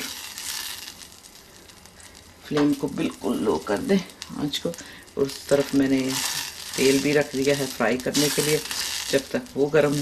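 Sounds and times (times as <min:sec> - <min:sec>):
sauce sizzling in a saucepan: 0:00.0 - 0:10.0
spatula stirring: 0:05.5 - 0:10.0.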